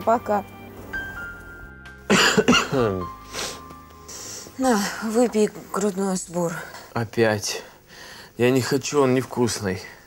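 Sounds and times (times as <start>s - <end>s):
quiet background music: 0.0s - 10.0s
man coughing hoarsely: 2.1s - 3.1s.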